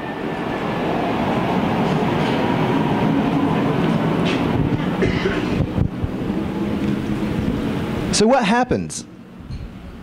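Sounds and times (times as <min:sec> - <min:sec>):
passing engine rumble: 0:00.0 - 0:10.0.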